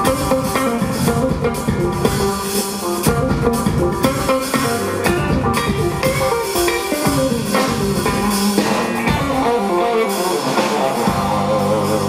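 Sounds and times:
bass: 0.0s - 12.0s
drums with cymbals: 0.0s - 12.0s
electric guitar: 0.0s - 12.0s
piano: 0.0s - 12.0s.

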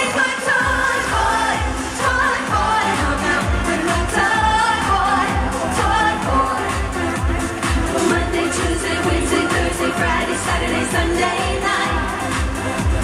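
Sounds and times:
woman singing into microphone: 0.0s - 7.0s, 7.8s - 12.3s
up-tempo dance backing: 0.0s - 13.0s.

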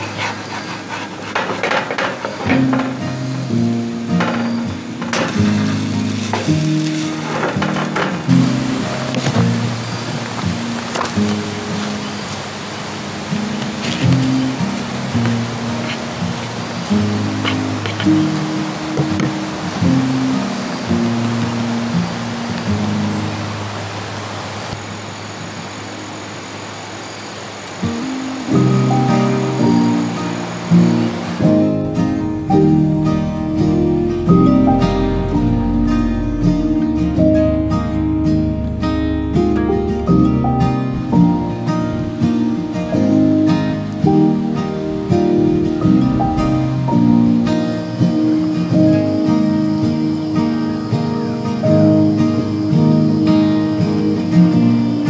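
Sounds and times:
instrumental music with low notes: 2.3s - 24.3s, 27.9s - 55.0s.

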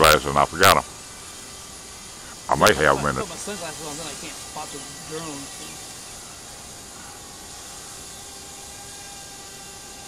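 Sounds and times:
drones whining overhead: 0.0s - 10.0s
steady hiss: 0.0s - 10.0s.

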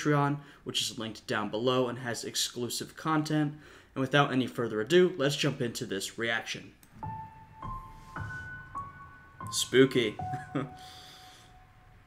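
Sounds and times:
quiet slow background music: 6.9s - 12.0s
soft piano note: 6.9s - 12.0s.

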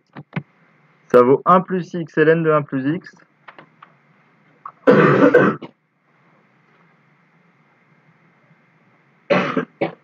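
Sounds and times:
person coughing: 4.7s - 5.8s, 9.3s - 10.0s.

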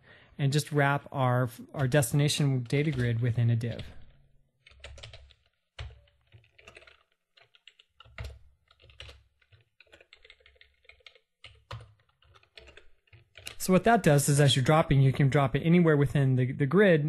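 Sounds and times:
computer keyboard typing: 1.7s - 14.1s.

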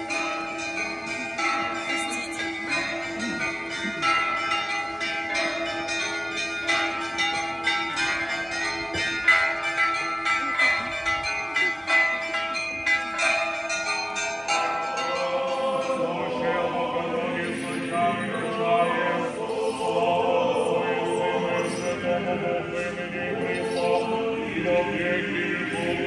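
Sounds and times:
lower bell ringing: 0.0s - 20.1s, 21.0s - 24.2s.

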